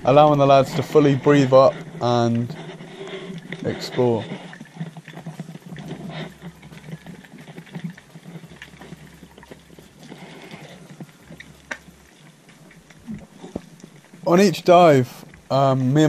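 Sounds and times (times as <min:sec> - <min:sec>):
faint clicks and crackles: 0:00.0 - 0:16.0
muffled underwater wash: 0:00.0 - 0:16.0.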